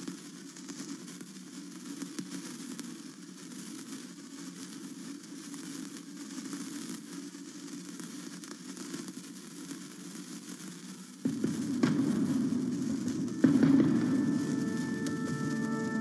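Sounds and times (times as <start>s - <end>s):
sparkler fizzing and crackling: 0.0s - 16.0s.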